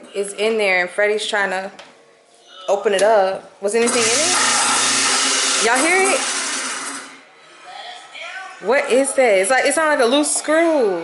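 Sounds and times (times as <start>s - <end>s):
garbage disposal running: 3.8s - 7.3s.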